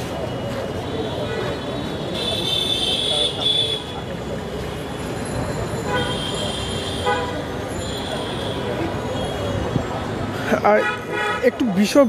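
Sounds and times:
crowd talking: 0.0s - 12.0s
traffic: 0.0s - 12.0s.

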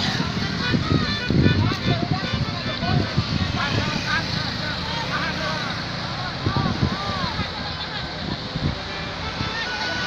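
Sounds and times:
people calling out: 0.0s - 10.0s
vehicle engine passing: 0.0s - 10.0s.

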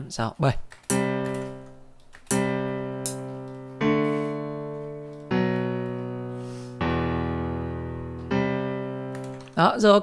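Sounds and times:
piano block chords ringing: 0.9s - 9.7s.

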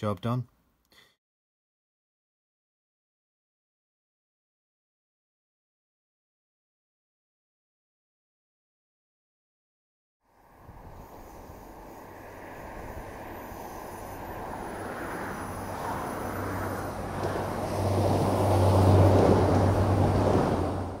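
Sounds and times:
passenger train passing: 10.3s - 21.0s.

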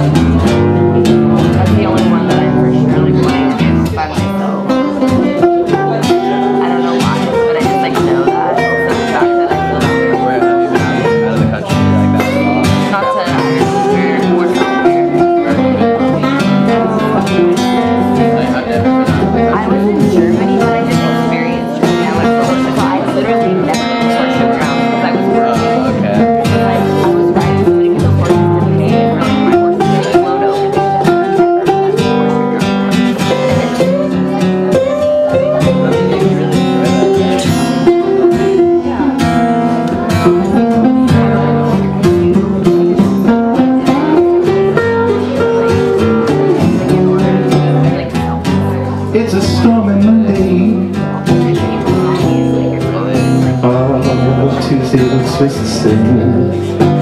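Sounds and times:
two guitars playing together: 0.0s - 57.0s.

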